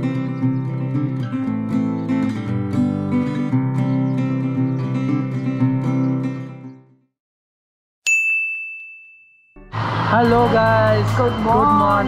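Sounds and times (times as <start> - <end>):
bright ding: 8.0 - 9.7.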